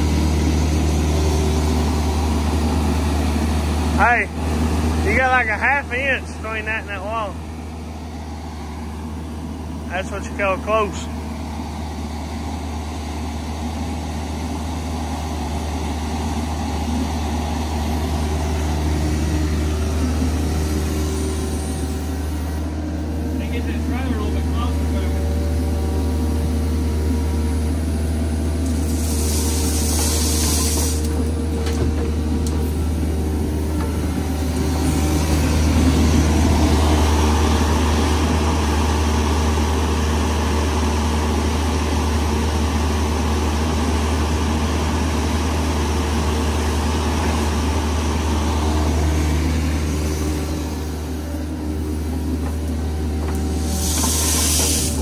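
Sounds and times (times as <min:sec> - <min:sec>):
diesel excavator engine running: 0:00.0 - 0:55.0
hydraulics working: 0:00.0 - 0:55.0
gravel pouring from bucket: 0:28.8 - 0:31.0.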